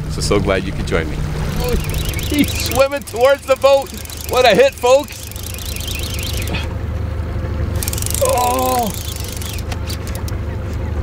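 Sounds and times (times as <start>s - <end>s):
outboard motor running: 0.0s - 6.8s, 7.8s - 10.4s.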